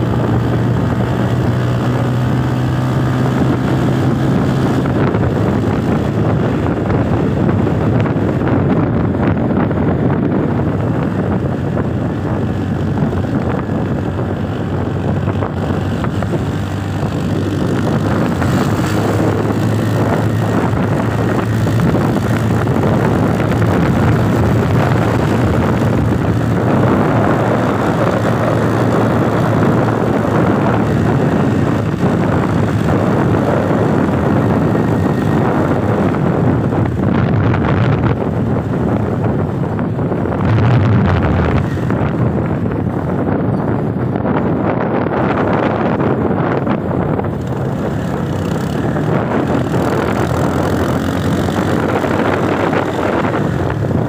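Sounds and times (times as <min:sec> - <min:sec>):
vehicle engine humming: 0:00.0 - 0:54.0
wind and road noise: 0:00.0 - 0:54.0.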